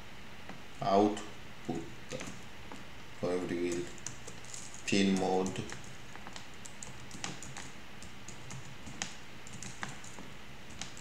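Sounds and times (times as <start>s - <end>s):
typing on computer keyboard: 3.6s - 11.0s.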